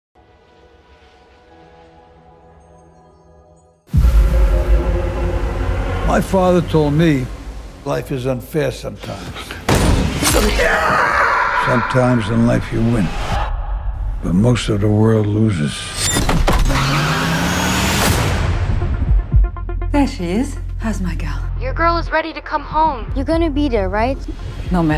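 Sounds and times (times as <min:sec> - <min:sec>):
droning musical tones: 0:03.9 - 0:08.2
deep cinematic rumble: 0:03.9 - 0:08.7
car engine: 0:16.2 - 0:18.4.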